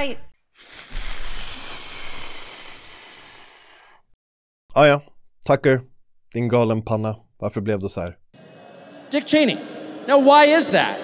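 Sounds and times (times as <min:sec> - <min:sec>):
man blowing out breath: 0:00.6 - 0:04.2.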